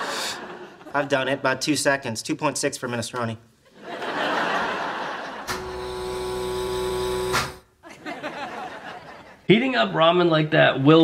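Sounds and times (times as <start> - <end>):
laser electric buzzing hum: 5.5 - 7.7.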